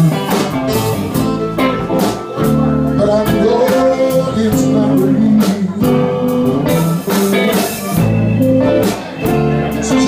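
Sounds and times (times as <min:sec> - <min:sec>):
blues band playing: 0:00.0 - 0:10.0
electric guitar: 0:00.0 - 0:10.0.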